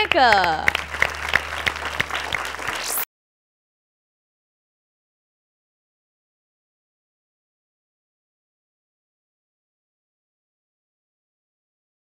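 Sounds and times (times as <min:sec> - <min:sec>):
person speaking: 0:00.0 - 0:00.7
audience applause: 0:00.0 - 0:03.1.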